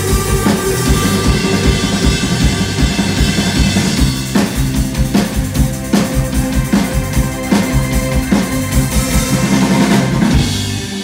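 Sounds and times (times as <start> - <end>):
drum kit beat: 0.0 - 11.0
electric bass: 0.0 - 11.0
electric guitar: 0.0 - 11.0.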